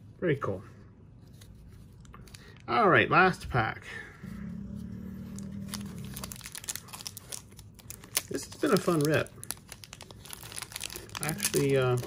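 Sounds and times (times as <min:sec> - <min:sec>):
low steady hum: 0:00.0 - 0:12.0
foil wrapper crinkling and tearing: 0:05.3 - 0:12.0.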